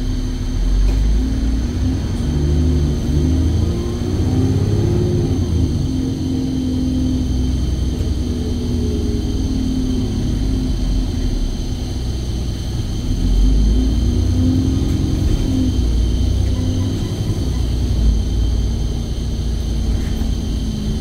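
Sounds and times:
bus engine accelerating: 0.0s - 21.0s.

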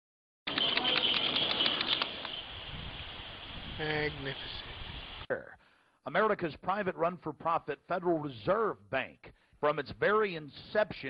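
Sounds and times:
wind rumble on microphone: 2.4s - 5.2s.

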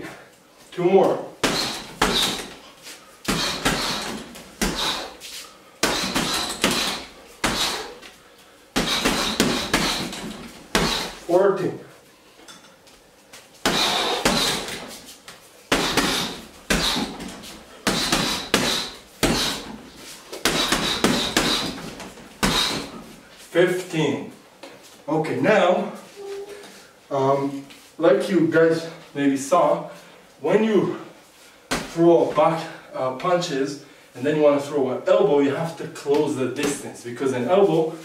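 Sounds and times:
punches on heavy bag: 1.4s - 2.6s, 3.3s - 5.2s, 5.8s - 8.0s, 8.8s - 11.2s, 13.6s - 14.9s, 15.7s - 19.8s, 20.4s - 23.0s.

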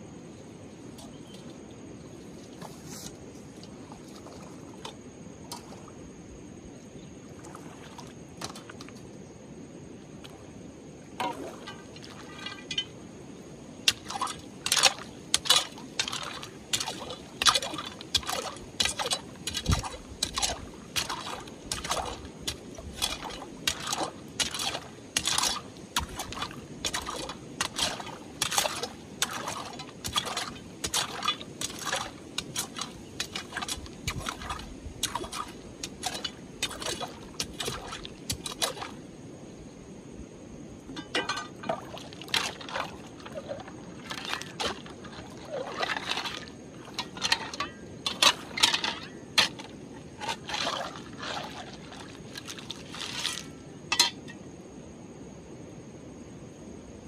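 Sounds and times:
running water: 11.1s - 13.2s, 13.8s - 39.0s, 40.9s - 54.3s
metal bar striking stones: 40.9s - 41.7s, 53.9s - 54.4s.

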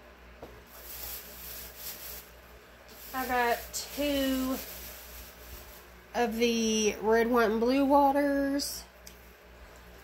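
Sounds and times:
faint rustling and rubbing: 0.7s - 6.4s.

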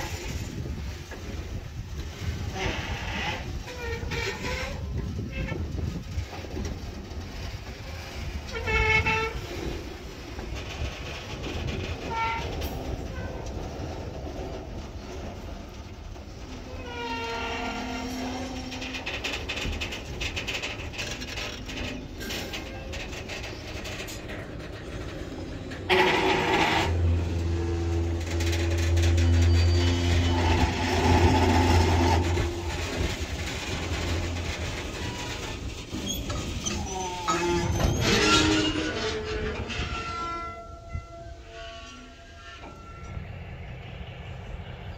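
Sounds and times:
freight train cars rolling: 0.0s - 44.9s
wheel squeals: 16.5s - 43.4s
locomotive horn: 25.8s - 35.4s, 37.0s - 43.3s.

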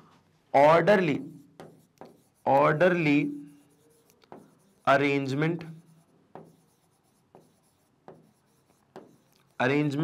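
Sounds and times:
pen writing on a board: 1.2s - 9.7s.

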